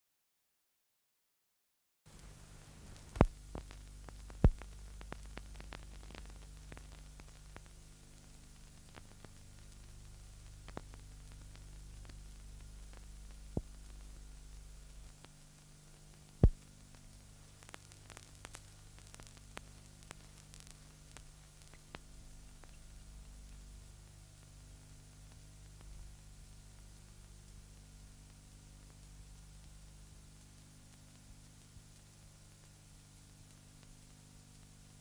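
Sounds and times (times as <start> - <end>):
film crackles and clicks: 2.1 - 34.8
faint ticks: 2.1 - 35.0
low electrical hum: 2.1 - 35.0
loud pops: 2.8 - 7.7, 16.4 - 16.7.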